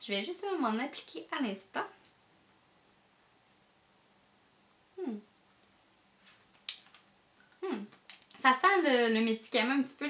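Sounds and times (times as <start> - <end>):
woman humming softly: 5.0 - 5.3, 7.6 - 7.9.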